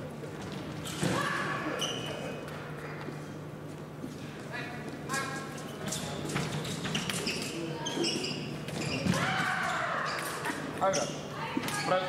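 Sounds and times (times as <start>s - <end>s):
shoes squeaking on floor: 1.7s - 2.4s, 5.6s - 12.0s.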